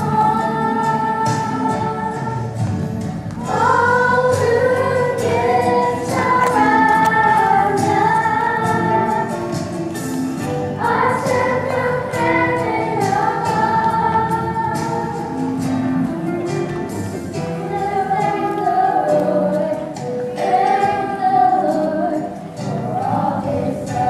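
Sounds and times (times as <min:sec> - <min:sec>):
voices singing: 0:00.0 - 0:24.0
band accompaniment: 0:01.2 - 0:21.1.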